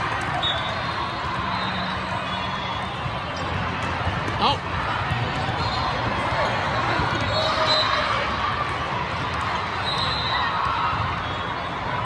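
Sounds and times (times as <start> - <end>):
crowd chatter in echoing hall: 0.0 - 12.0.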